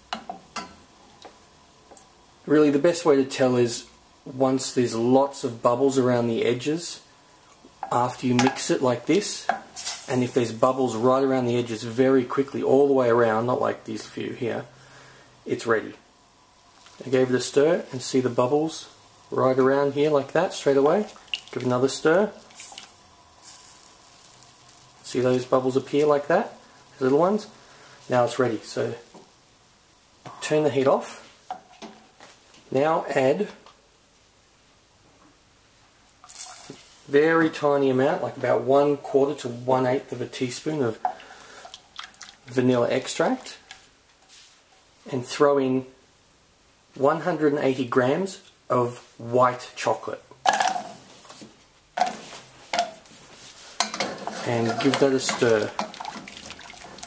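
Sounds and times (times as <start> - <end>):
faint sizzle of heating cream: 0.0 - 57.0
liquid splashing into hot cream: 21.1 - 21.7, 41.6 - 42.5, 54.8 - 57.0.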